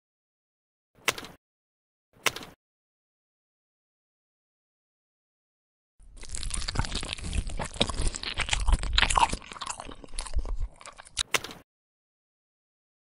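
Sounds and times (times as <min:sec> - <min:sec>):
dense crackling crunching: 0:06.0 - 0:11.3.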